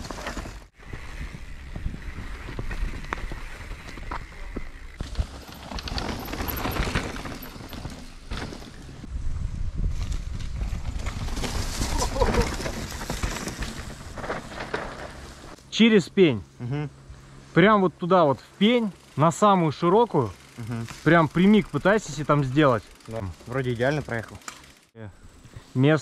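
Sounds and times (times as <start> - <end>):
bike rattling and knocking: 0.0 - 9.0, 10.0 - 15.6, 20.1 - 24.9
bike tyres on dirt: 0.0 - 15.8, 16.7 - 26.0
wind rumble on microphone: 0.8 - 4.1, 9.0 - 12.5.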